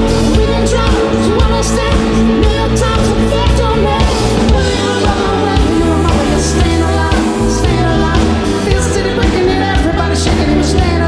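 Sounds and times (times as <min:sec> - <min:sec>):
rock band music with singing: 0:00.0 - 0:11.0.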